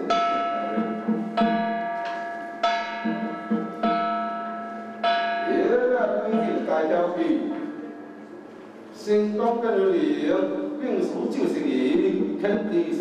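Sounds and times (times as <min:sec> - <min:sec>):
ritual bell ringing: 0:00.0 - 0:08.5
low murmur: 0:00.0 - 0:13.0
person speaking: 0:05.4 - 0:13.0.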